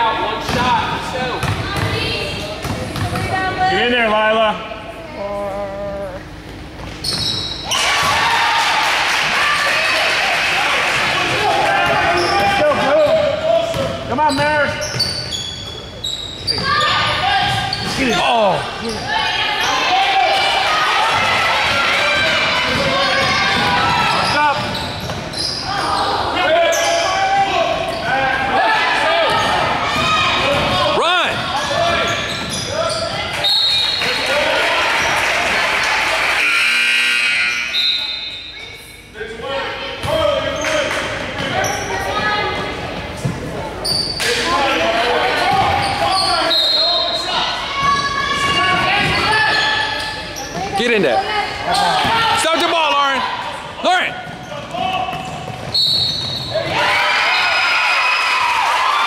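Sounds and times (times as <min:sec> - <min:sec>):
people shouting in a hall: 0:07.6 - 0:13.6, 0:16.6 - 0:24.5, 0:25.6 - 0:38.1, 0:56.4 - 0:59.0.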